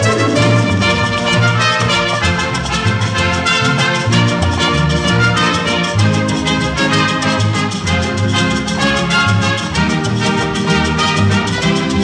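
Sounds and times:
orchestral brass: 0.0s - 12.0s
steady percussion beat: 0.0s - 12.0s.

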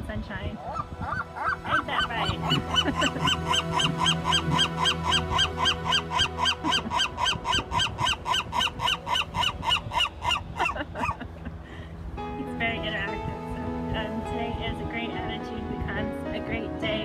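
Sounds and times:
gull long call yelping: 0.6s - 11.2s.

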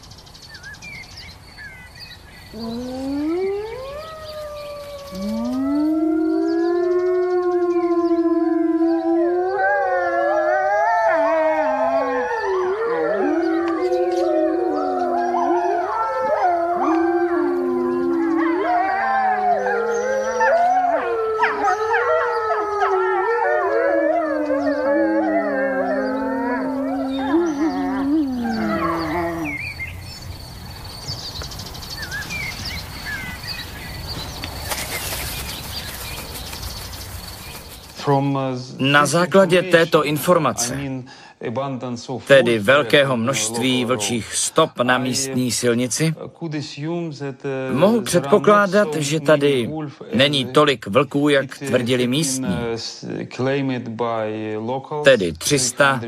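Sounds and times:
wolves howling: 2.5s - 30.2s, 47.7s - 49.4s.

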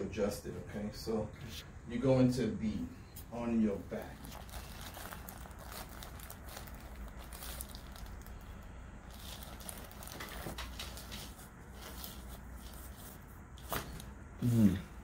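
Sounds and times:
faint steady low hum: 0.0s - 15.0s.

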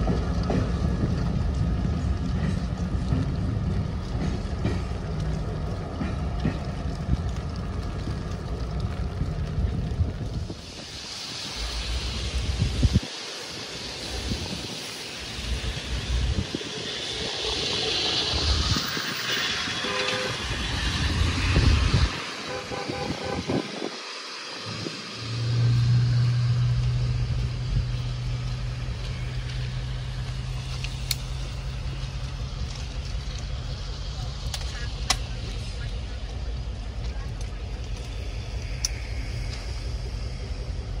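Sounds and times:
locomotive engine drone: 0.0s - 41.0s
wind buffeting microphone: 0.0s - 41.0s
distant train horn: 19.7s - 20.8s, 22.4s - 23.8s.

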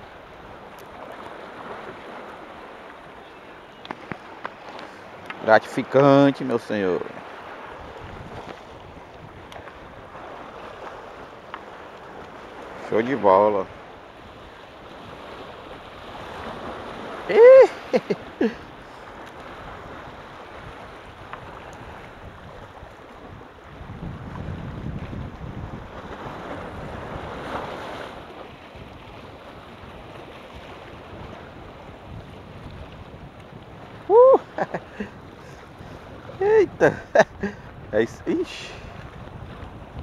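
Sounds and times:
surf breaking on rocks: 3.8s - 23.4s, 24.1s - 40.0s
wind on microphone: 7.0s - 40.0s
vocal exclamation: 17.3s - 18.6s, 34.1s - 34.7s, 36.4s - 37.0s.

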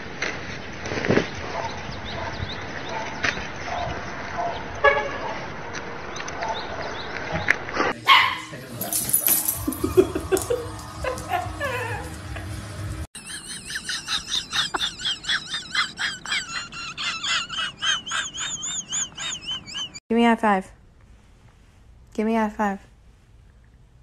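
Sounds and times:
puppy yipping: 8.1s - 8.6s
husky howling: 9.7s - 12.8s.

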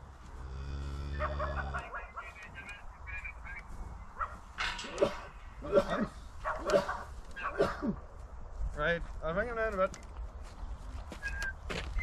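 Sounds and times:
cow lowing: 0.2s - 2.0s
dog barking: 1.1s - 2.1s, 4.2s - 5.2s, 5.8s - 7.8s.

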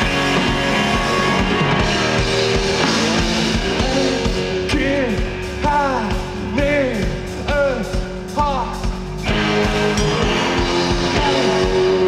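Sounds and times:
drum beat: 0.0s - 12.0s
electric guitars: 0.0s - 12.0s.

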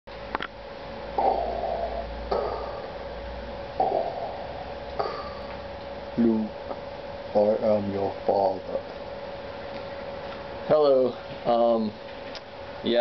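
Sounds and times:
faint hum: 0.1s - 13.0s
man breathing loudly: 1.2s - 3.1s, 3.8s - 5.7s.

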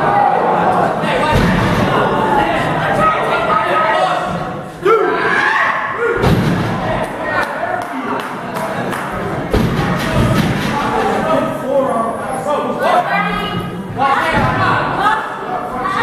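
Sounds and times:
crowd voices: 0.0s - 16.0s.

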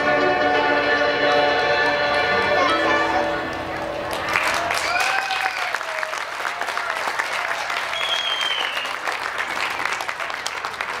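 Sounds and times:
audience applauding: 4.1s - 11.0s
high whistle: 7.9s - 9.0s.

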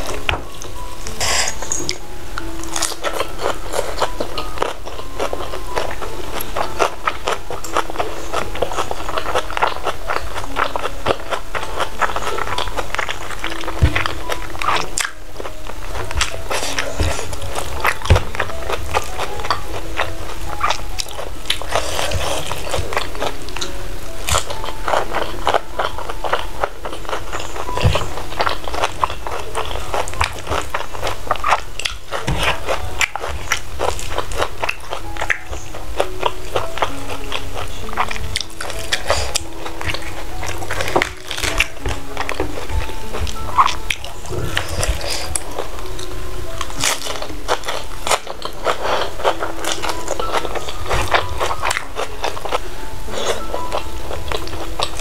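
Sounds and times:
chewing and crunching food: 0.0s - 55.0s
soft background music: 0.0s - 55.0s.

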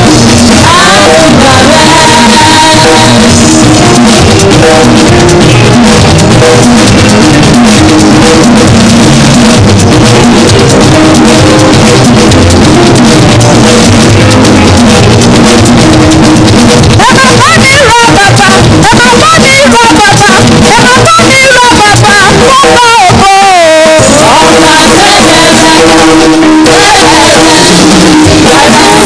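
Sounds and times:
person's voice: 0.0s - 5.2s, 17.0s - 29.0s
drum kit beat: 0.0s - 29.0s
praise band music: 0.0s - 29.0s.

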